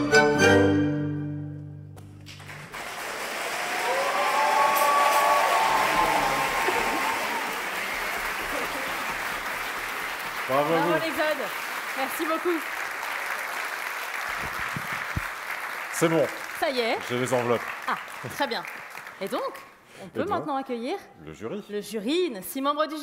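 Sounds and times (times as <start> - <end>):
audience applauding: 2.0 - 19.8.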